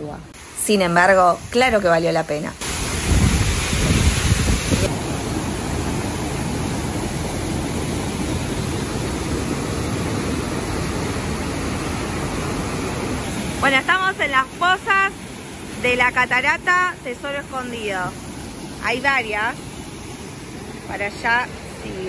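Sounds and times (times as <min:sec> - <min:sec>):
waterfall and stream rushing: 0:00.2 - 0:22.0.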